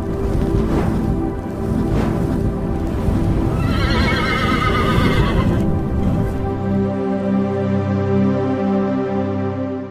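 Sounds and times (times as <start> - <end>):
galloping hoofbeats rumble: 0.0 - 6.7
music: 0.0 - 9.9
horse whinny: 3.5 - 5.7.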